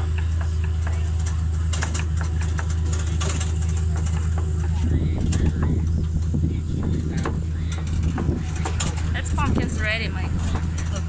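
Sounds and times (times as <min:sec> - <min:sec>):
tractor engine droning: 0:00.0 - 0:11.0
wagon clicks and rattles: 0:00.0 - 0:11.0.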